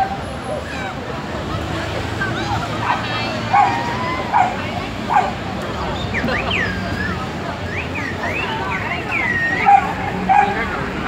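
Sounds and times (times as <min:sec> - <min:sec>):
dog barking: 0:02.8 - 0:05.4, 0:09.6 - 0:10.7.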